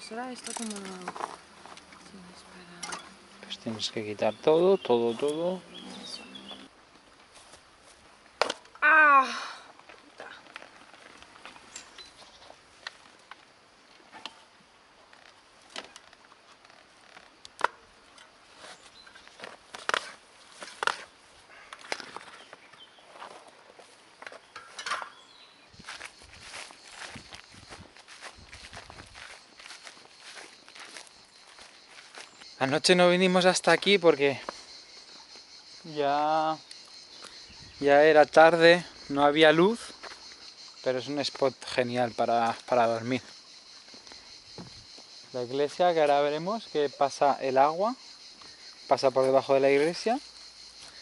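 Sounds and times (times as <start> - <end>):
bicycle tyre clicks and scrapes: 0.3 - 2.0.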